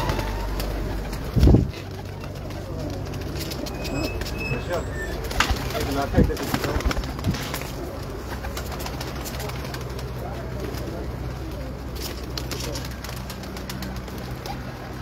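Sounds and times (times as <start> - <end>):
pigeons cooing: 0.0 - 15.0.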